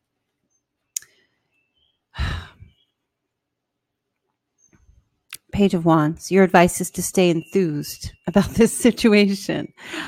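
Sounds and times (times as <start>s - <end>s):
woman sighing: 2.2s - 2.7s.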